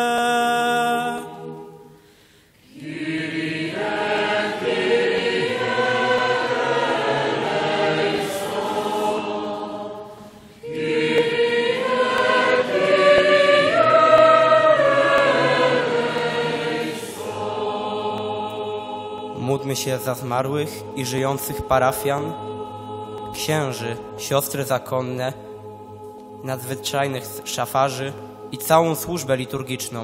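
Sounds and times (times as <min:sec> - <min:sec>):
congregation singing: 0:00.0 - 0:30.0.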